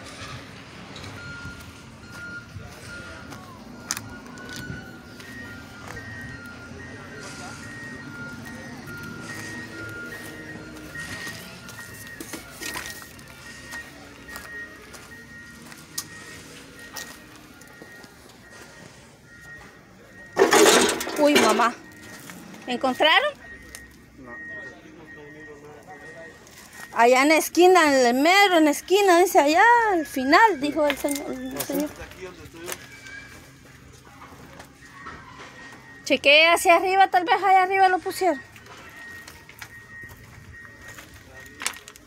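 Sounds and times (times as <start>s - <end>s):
electronic beeping tune: 0.1s - 42.0s.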